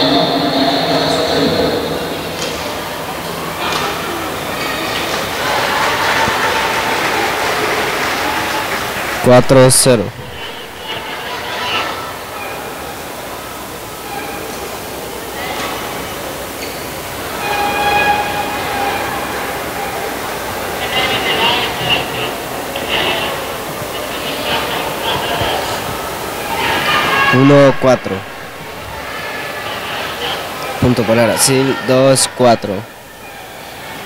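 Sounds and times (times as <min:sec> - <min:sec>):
murmur of voices: 0:00.0 - 0:34.0.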